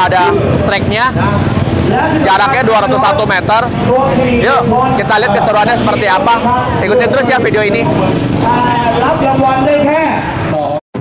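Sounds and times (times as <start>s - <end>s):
motorcycle engine at high revs: 0.0s - 9.7s
men's voices: 0.0s - 10.8s.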